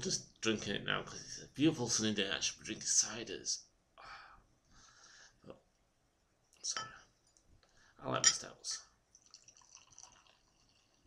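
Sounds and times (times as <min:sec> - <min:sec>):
beer pouring into a glass: 0:09.1 - 0:11.0.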